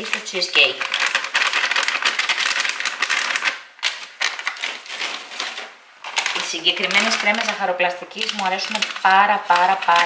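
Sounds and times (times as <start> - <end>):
powder shaken from paper sachet: 0.0 - 10.0.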